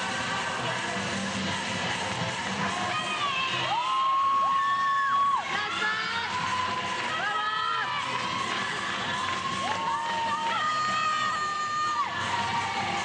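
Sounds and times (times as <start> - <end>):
backing music: 0.0 - 13.0
crowd cheering and shouting: 1.5 - 13.0.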